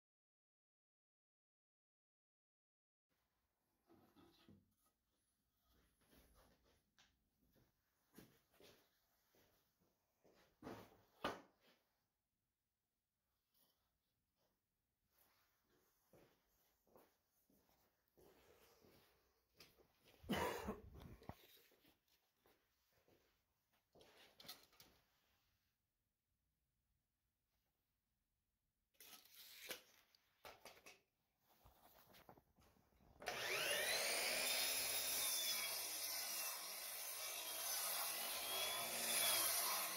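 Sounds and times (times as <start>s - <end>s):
person coughing: 20.2s - 21.0s.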